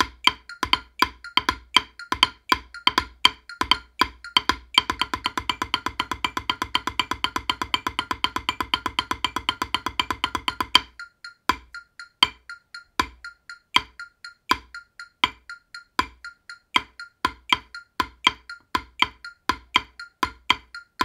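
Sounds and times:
drumsticks on practice pad: 0.0 - 21.0.

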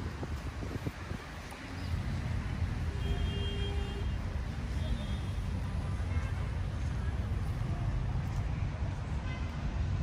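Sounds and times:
low rumble of city traffic: 0.0 - 10.0.

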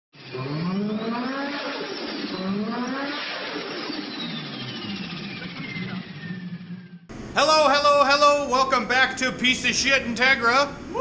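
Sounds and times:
car engine revving hard: 0.2 - 7.1
turbo whistle: 0.3 - 7.0.

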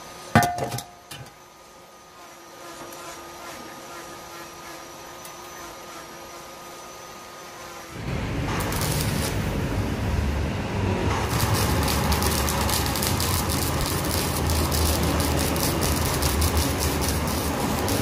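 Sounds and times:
steady motor hum: 1.0 - 18.0
welding arc crackling: 7.6 - 18.0.

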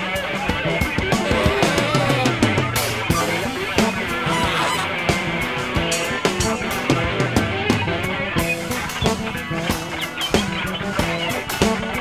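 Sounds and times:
electric guitars: 0.0 - 12.0
electric bass: 0.5 - 12.0
tenor saxophone honking notes: 1.2 - 5.2.

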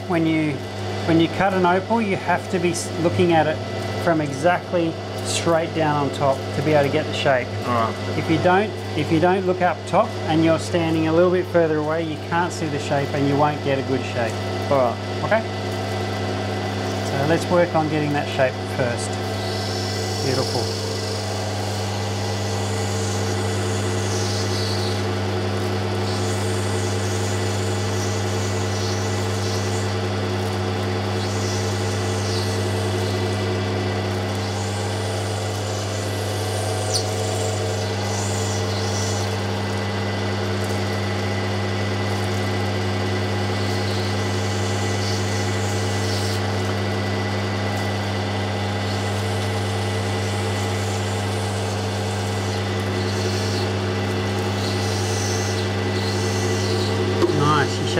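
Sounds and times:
electric motor hum: 0.0 - 57.9
stone grinding on wheel: 34.1 - 39.6.

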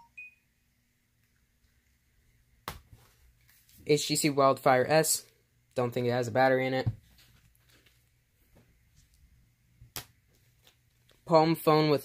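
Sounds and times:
high-pitched beep: 0.0 - 0.4
faint steady hum: 0.0 - 12.0.

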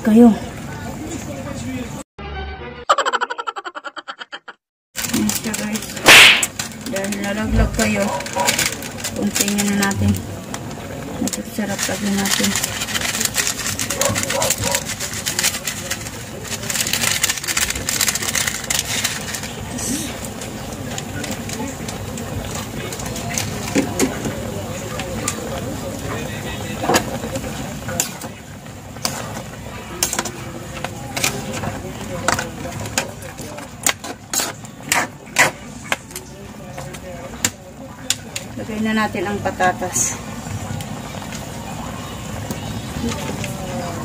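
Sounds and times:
murmur of voices: 5.0 - 44.0
meat simmering in a pan: 8.2 - 44.0.

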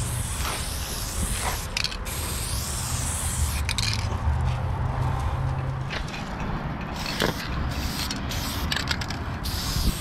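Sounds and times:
spray paint can hissing: 0.0 - 4.0, 6.9 - 10.0.

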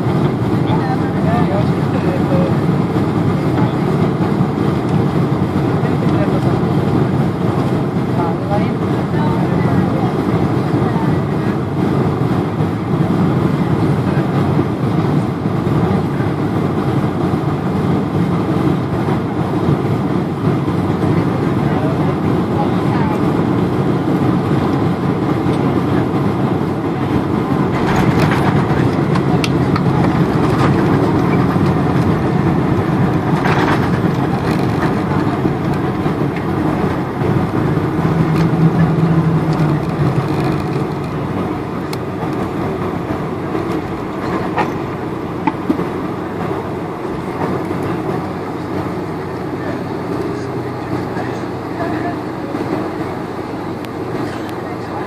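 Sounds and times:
airflow and engine rush: 0.0 - 55.0
runway rumbling: 0.0 - 55.0
low hum: 24.9 - 55.0.

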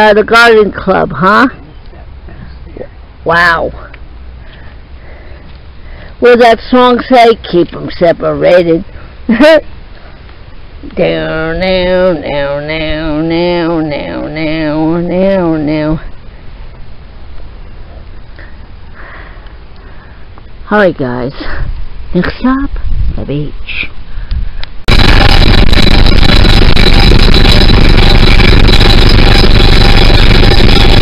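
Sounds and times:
faint hiss: 0.0 - 13.4, 14.0 - 24.8
steady low rumble: 0.0 - 31.0
low rumble: 24.4 - 31.0.

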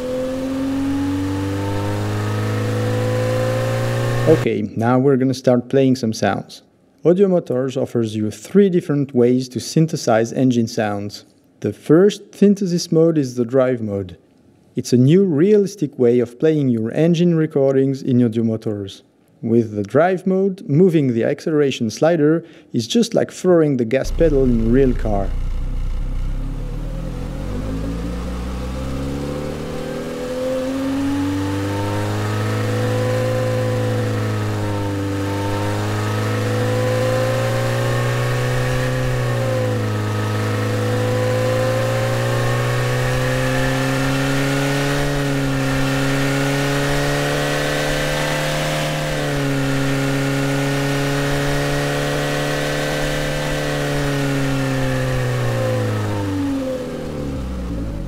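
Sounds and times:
car engine revving: 0.0 - 4.5, 24.0 - 58.0.

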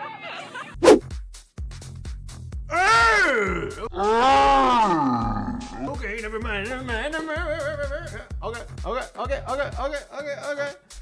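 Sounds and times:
man yelling: 2.7 - 4.7.

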